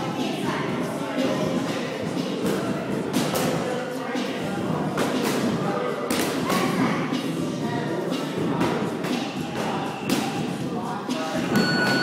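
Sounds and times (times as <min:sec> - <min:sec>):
echoing background chatter: 0:00.0 - 0:12.0.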